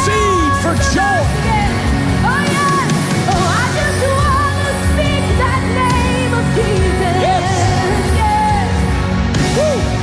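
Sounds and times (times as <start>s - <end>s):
band playing chords: 0.0s - 10.0s.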